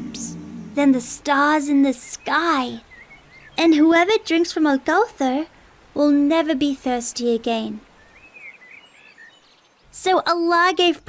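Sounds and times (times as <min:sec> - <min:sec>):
birds chirping: 0:00.0 - 0:05.6, 0:06.8 - 0:11.0
low background hiss: 0:00.0 - 0:11.0.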